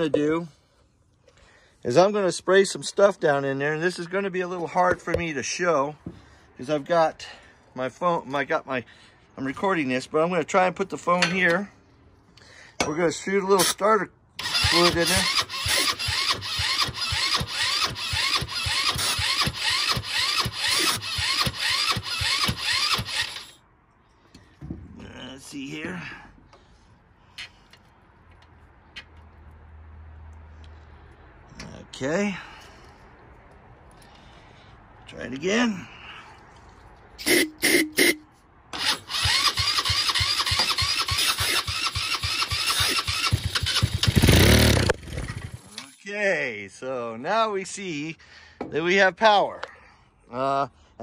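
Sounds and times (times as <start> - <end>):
electric starter cranking engine: 14.4 - 23.6, 38.7 - 45.8.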